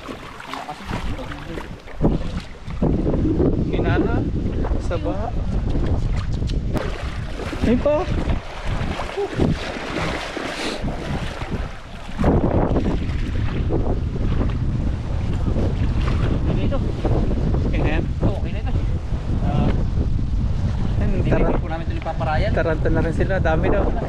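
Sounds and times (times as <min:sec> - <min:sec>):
shallow stream flowing: 0:00.0 - 0:03.6, 0:05.4 - 0:17.5
wind buffeting microphone: 0:00.0 - 0:24.0.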